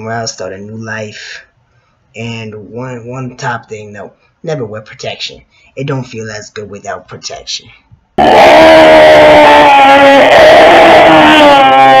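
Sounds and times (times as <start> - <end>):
man screaming: 8.2 - 12.0.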